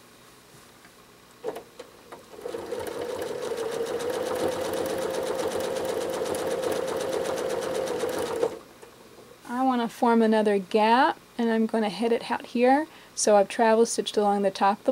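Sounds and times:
sewing machine stitching: 1.4 - 8.6.

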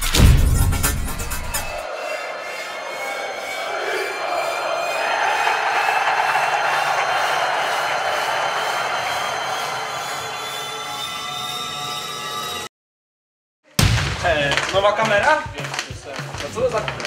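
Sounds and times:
electronic music with rising tones: 0.0 - 12.7
stadium crowd cheering: 1.1 - 12.7.

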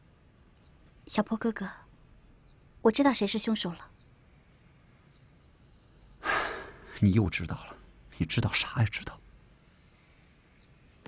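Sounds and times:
man sighing: 6.2 - 7.0.

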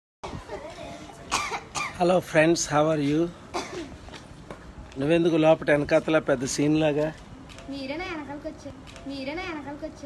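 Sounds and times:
person coughing: 1.3 - 2.0, 3.5 - 4.0.

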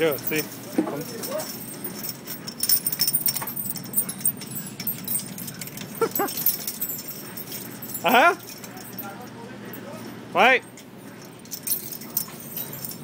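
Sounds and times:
sharp clicks and clinks: 0.0 - 9.4.

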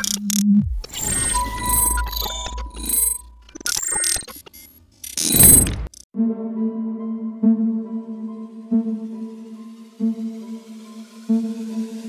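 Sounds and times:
glitchy mechanical clicking: 0.0 - 6.1.

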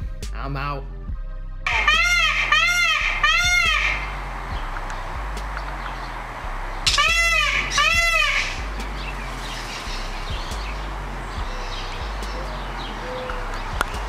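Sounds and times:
peacock calling: 1.7 - 14.0.

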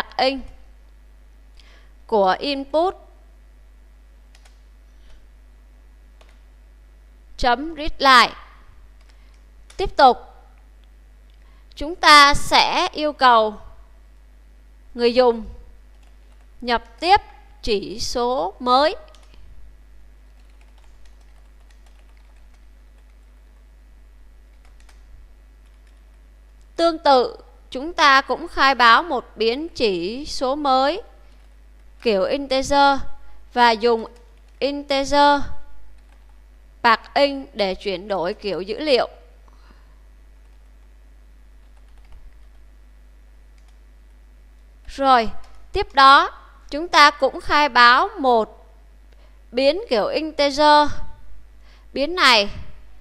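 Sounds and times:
steady low hum: 0.0 - 53.0
typing on computer keyboard: 4.3 - 4.6, 6.2 - 6.4, 20.3 - 23.2, 24.5 - 25.0, 34.1 - 34.6, 36.0 - 36.4, 41.6 - 42.6, 43.6 - 43.8.

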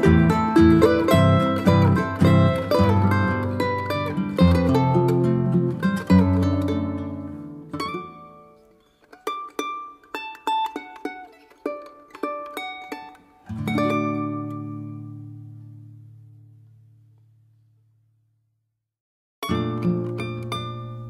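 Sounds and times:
plucked charango and guitar music: 0.0 - 16.7, 19.4 - 21.0.

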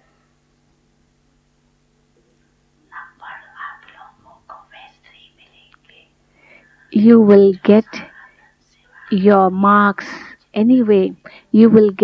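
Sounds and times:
steady low hum: 0.0 - 12.0
faint voice speaking softly: 2.9 - 6.1, 6.8 - 10.2.

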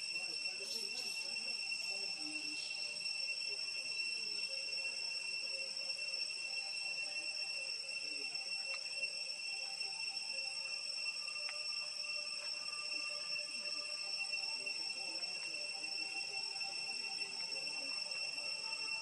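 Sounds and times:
insects droning: 0.0 - 19.0
faint clicks: 8.6 - 8.9.

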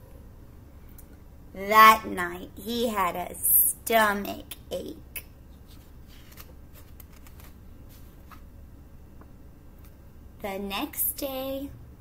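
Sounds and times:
low steady hum: 0.0 - 12.0
paper pages rustling: 5.6 - 8.5.

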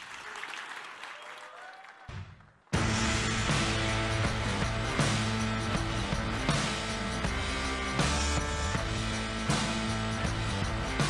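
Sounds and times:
audience applauding: 0.0 - 2.8
loud music: 2.8 - 11.0.

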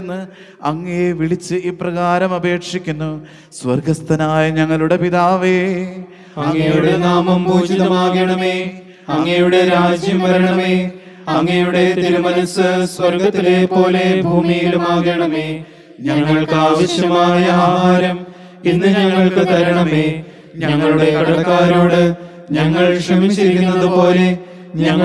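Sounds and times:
man chanting a prayer: 0.0 - 8.8.

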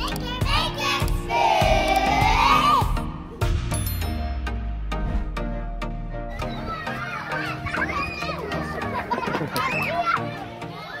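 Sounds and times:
background music: 0.0 - 11.0
children calling and chattering: 6.4 - 11.0.

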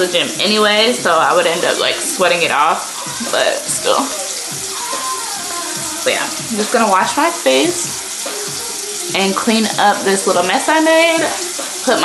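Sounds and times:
water running from tap: 0.0 - 12.0.

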